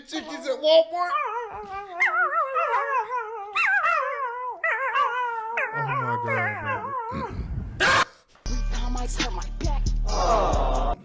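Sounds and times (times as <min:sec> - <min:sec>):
puppy howling and whining: 0:01.0 - 0:07.3.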